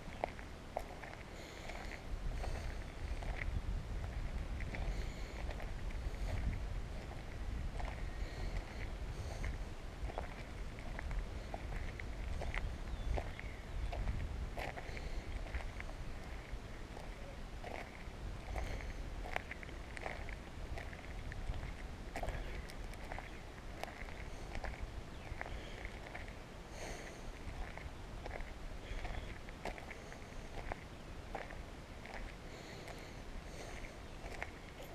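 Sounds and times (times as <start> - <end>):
footsteps crunching on gravel: 0.0 - 34.9
wind rumble on microphone: 0.0 - 34.9.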